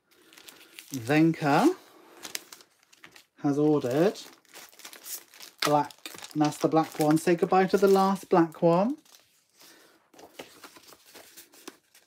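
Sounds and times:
plastic bag crinkling: 0.0s - 9.5s
person speaking: 0.9s - 1.9s, 3.4s - 4.4s, 5.6s - 9.1s.

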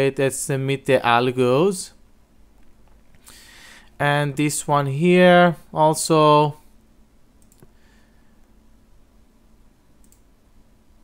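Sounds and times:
low room hum: 0.0s - 11.0s
computer mouse clicks: 7.4s - 7.8s, 10.0s - 10.3s.

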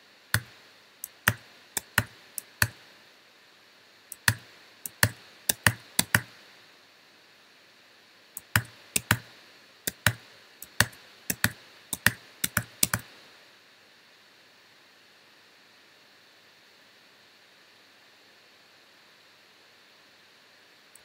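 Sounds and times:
faint steady hiss: 0.0s - 21.0s
computer keys clicking: 0.4s - 2.8s, 4.1s - 6.3s, 8.4s - 9.3s, 9.9s - 13.0s.

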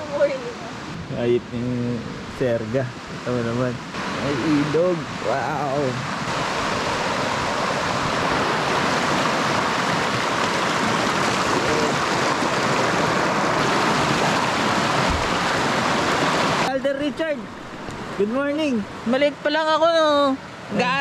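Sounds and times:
water rushing over stones: 2.4s - 19.7s.

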